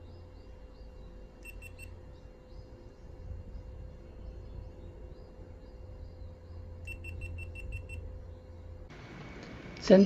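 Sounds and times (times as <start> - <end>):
low background hum: 0.0 - 10.0
camera short high beeps: 1.4 - 1.9, 6.9 - 8.0.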